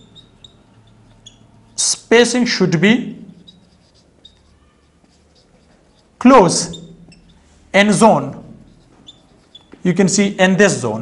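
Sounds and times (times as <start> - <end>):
marker squeaking on whiteboard: 0.0 - 11.0.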